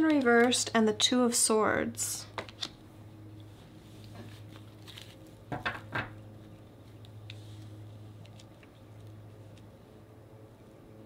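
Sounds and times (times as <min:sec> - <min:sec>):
faint steady hum: 0:00.0 - 0:11.0
cards being shuffled: 0:02.4 - 0:02.8, 0:04.0 - 0:05.5.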